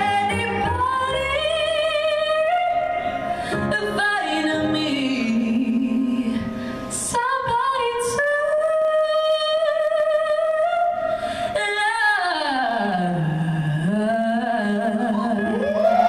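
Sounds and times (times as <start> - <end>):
keyboard accompaniment: 0.0 - 16.0
woman singing slow song: 0.0 - 16.0.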